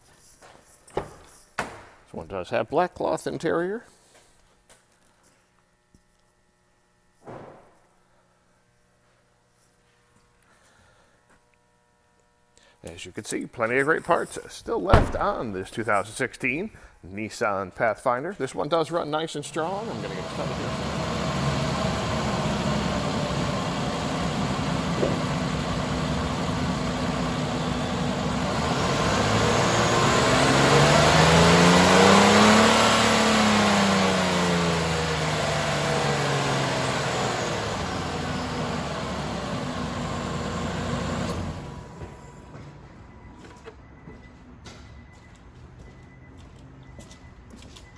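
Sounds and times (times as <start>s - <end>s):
car engine idling and revving: 19.8s - 42.4s.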